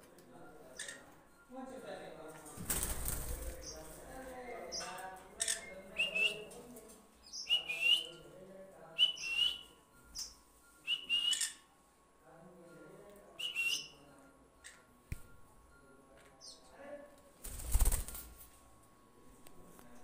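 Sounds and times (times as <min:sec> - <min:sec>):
parrot whistled call: 0:10.9 - 0:11.6.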